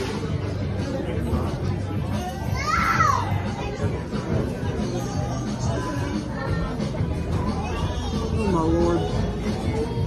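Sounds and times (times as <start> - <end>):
restaurant chatter: 0.0 - 10.0.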